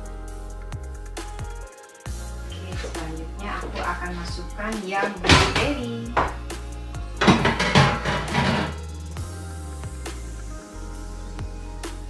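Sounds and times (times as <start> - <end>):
music with singing voice: 0.0 - 12.0
steady bass: 0.0 - 12.0.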